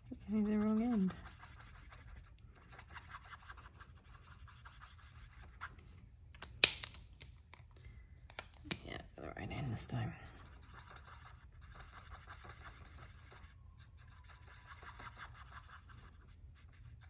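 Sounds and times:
marker scratching on paper: 0.0s - 5.9s, 10.3s - 17.0s.

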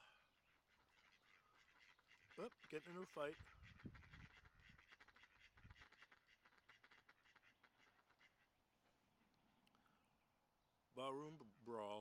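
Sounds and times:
ducks quacking rapidly: 0.0s - 8.5s.

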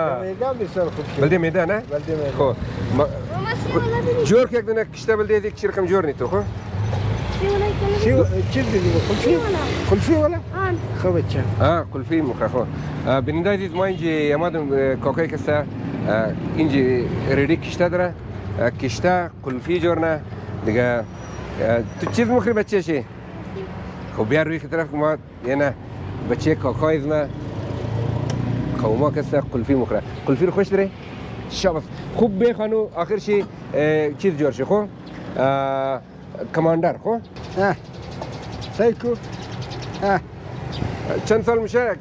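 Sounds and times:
vehicle engine rumbling: 0.0s - 42.0s.

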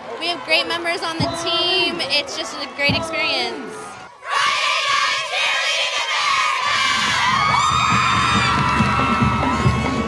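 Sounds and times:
girls cheering and screaming: 6.4s - 10.0s
music with a low beat: 7.5s - 10.0s.

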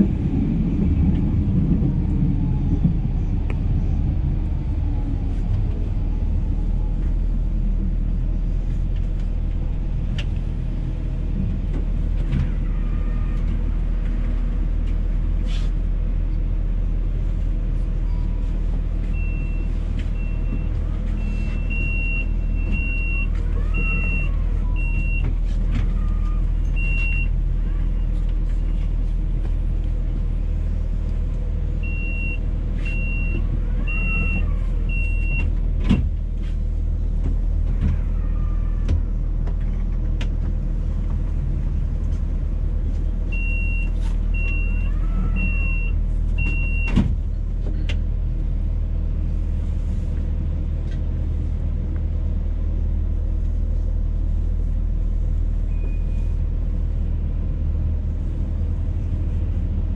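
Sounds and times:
tram equipment humming: 0.0s - 59.9s.

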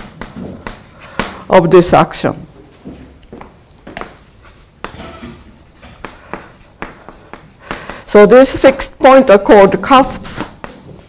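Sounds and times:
chalk tapping and scratching on board: 0.0s - 1.4s, 3.9s - 8.9s, 9.5s - 11.0s.

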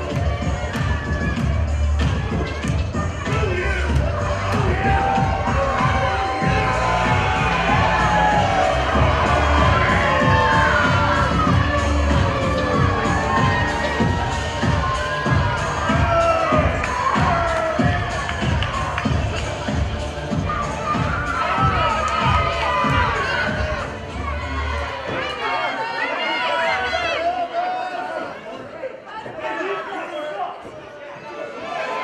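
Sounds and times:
children cheering and shouting: 0.0s - 28.4s.

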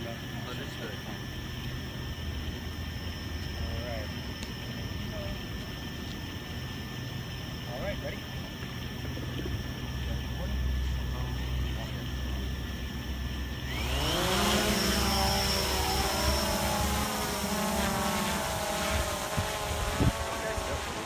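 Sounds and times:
drone propellers humming: 0.0s - 21.0s.

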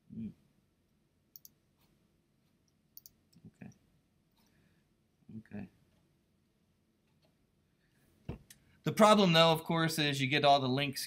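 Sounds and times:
computer mouse clicks: 1.3s - 1.6s, 2.7s - 3.4s.

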